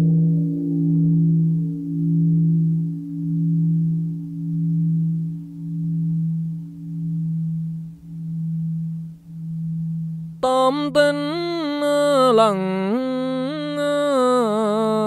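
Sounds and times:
low bell ringing: 0.0s - 10.4s.

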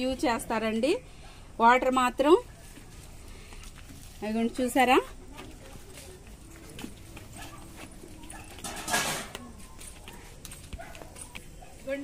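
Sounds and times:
faint background noise: 0.0s - 12.0s
dog barking: 7.3s - 12.0s.

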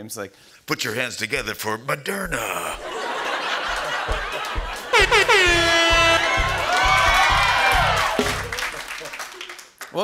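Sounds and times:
steady beat: 2.2s - 8.8s
band music sting: 4.9s - 8.6s.

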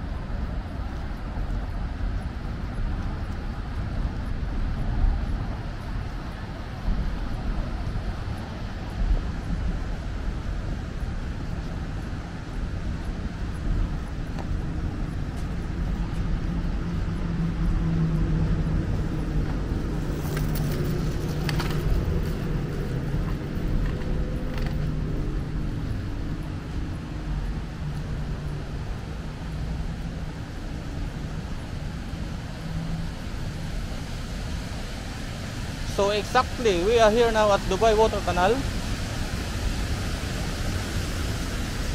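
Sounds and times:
road traffic rumble: 0.0s - 41.9s
vehicle passing: 13.3s - 41.9s.

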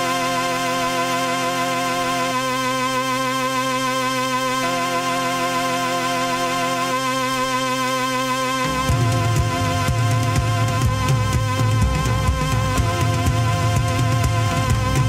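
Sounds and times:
held keyboard chords: 0.0s - 15.0s
rock band with bass and drums: 8.6s - 15.0s.

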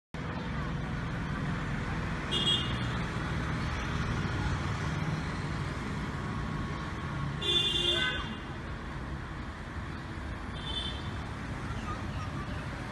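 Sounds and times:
road traffic rumble: 0.2s - 12.9s
vehicle horn toots: 7.4s - 8.4s.

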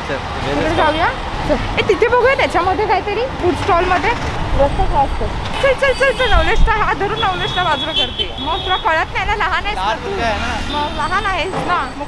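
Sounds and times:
passing vehicles rumbling: 0.0s - 12.0s.

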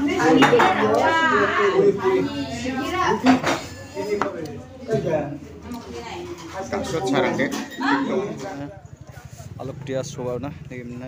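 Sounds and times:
voices talking: 0.0s - 11.0s
dishes and cutlery clinking: 0.2s - 1.2s, 3.1s - 4.3s, 5.8s - 8.6s.

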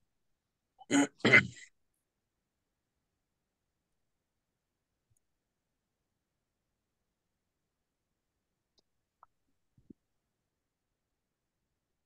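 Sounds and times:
person clearing throat: 0.8s - 1.7s.

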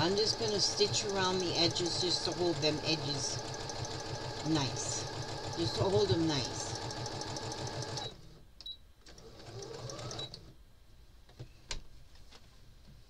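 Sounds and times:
sewing machine stitching: 0.0s - 8.3s, 9.1s - 10.4s.

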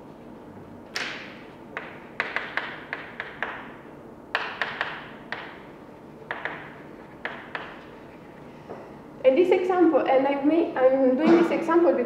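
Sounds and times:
chalk tapping on blackboard: 1.8s - 5.6s, 6.3s - 7.9s.

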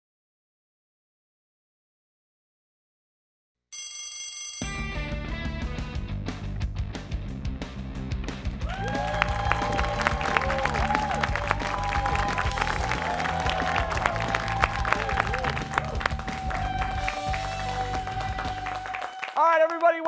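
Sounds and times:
upbeat theme music with beat: 4.6s - 19.4s
people cheering: 8.6s - 20.0s
people clapping: 8.6s - 20.0s.

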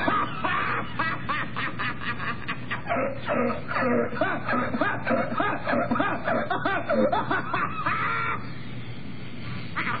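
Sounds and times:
man laughing in cackles: 0.0s - 8.5s, 9.8s - 10.0s.

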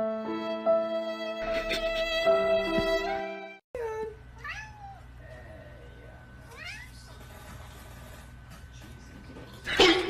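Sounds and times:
cat meowing: 4.4s - 5.1s, 6.5s - 7.0s.

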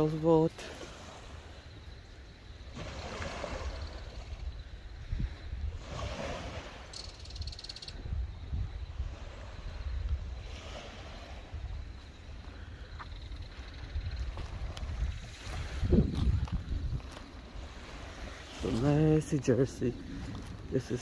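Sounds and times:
wind buffeting microphone: 2.4s - 21.0s.

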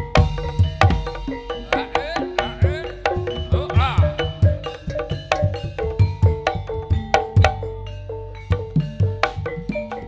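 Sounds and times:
gamelan dance music: 0.0s - 10.0s.

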